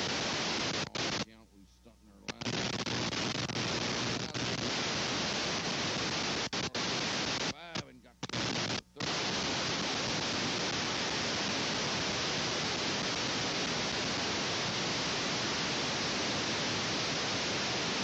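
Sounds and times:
videotape hiss: 0.0s - 18.0s.

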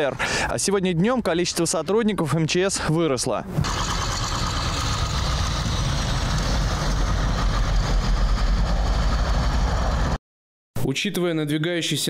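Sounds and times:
heavy vehicle engine running: 3.6s - 10.2s.

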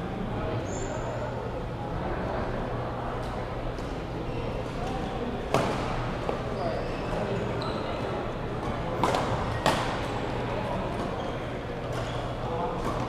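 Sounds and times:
hubbub of voices: 0.0s - 13.0s.

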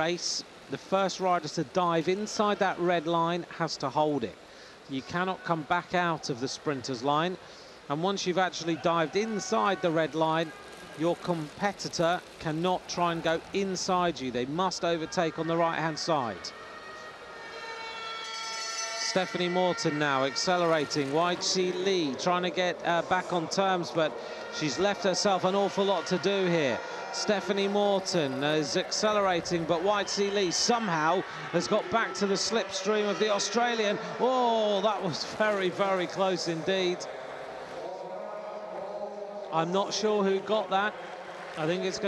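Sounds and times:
sustained siren-like tone: 16.5s - 21.0s.

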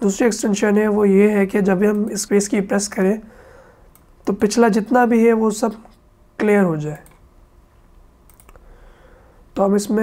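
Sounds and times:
faint computer mouse clicks: 3.9s - 4.1s, 8.3s - 8.7s.

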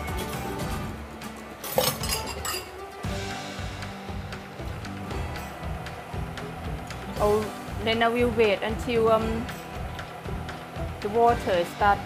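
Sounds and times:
background music: 0.0s - 12.0s
kitchenware clinking against wok: 1.6s - 2.9s.

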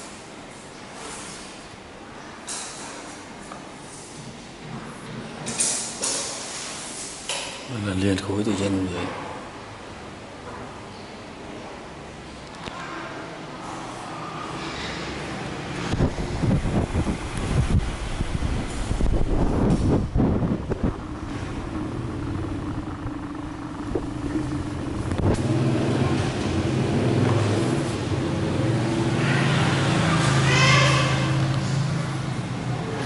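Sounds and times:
vehicle engine running: 15.7s - 30.5s.

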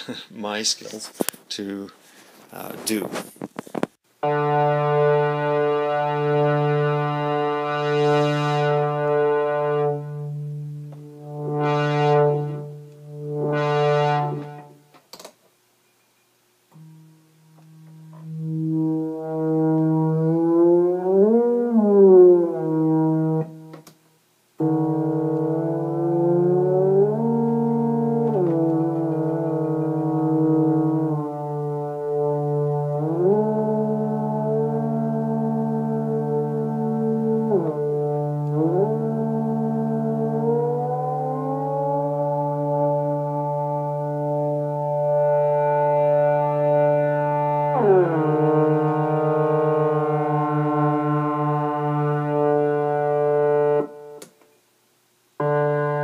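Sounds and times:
synthesizer pitch gliding: 4.2s - 14.8s, 16.8s - 23.7s, 24.6s - 54.2s.

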